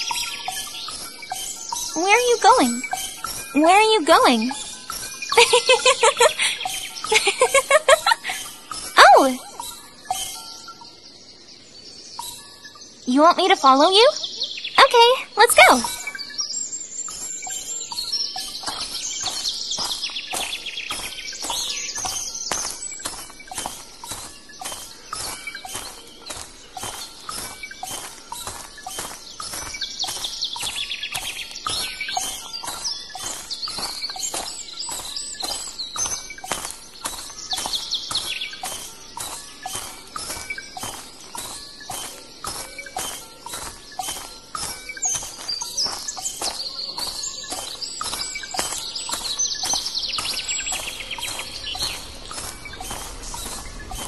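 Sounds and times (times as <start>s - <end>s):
birds chirping and calling: 0.0s - 54.0s.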